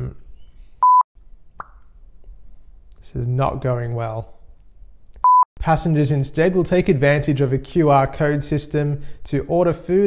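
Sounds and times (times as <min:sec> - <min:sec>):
test tone bleep: 0:00.8 - 0:01.0, 0:05.2 - 0:05.4.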